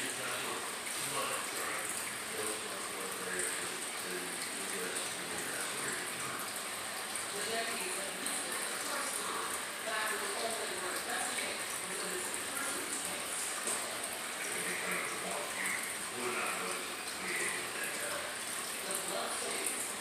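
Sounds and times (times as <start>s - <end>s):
faint indistinct voices: 0.0s - 20.0s.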